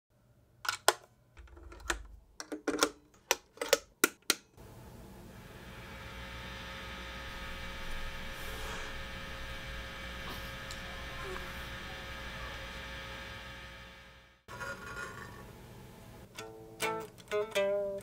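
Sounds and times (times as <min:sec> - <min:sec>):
guitar amplifier hum and hiss: 0:04.6 - 0:14.7, 0:15.3 - 0:18.0.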